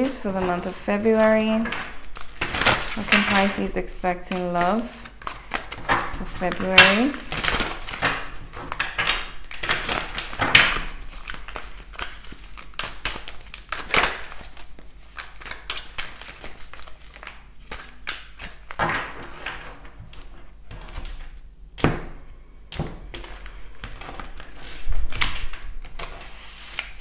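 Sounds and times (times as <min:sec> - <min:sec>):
cards being shuffled: 0:00.0 - 0:21.2, 0:22.7 - 0:27.0.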